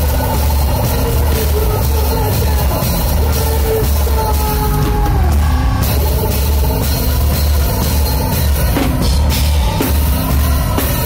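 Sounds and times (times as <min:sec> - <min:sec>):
drums and cymbal crashes: 0:00.0 - 0:11.0
live rock band: 0:00.0 - 0:11.0.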